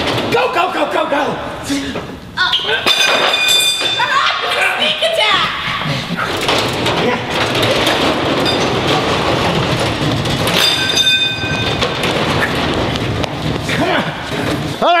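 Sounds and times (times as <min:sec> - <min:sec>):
metal roll-up door clattering: 0:00.0 - 0:01.1, 0:02.4 - 0:15.0.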